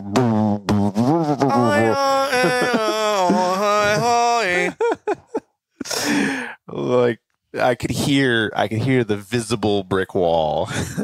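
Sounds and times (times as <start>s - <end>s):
man droning wordlessly: 1.3s - 6.9s.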